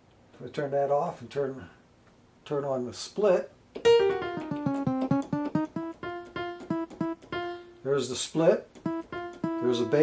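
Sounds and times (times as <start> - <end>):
keyboard notes in quick run: 3.9 - 7.6, 8.8 - 10.0.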